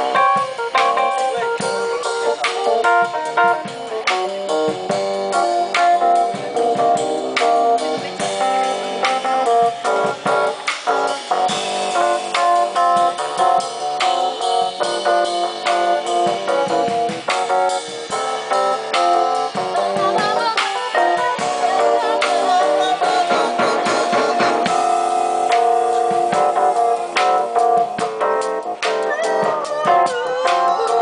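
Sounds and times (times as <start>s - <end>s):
drum kit: 0.0s - 31.0s
keyboard chords and melody: 0.0s - 31.0s.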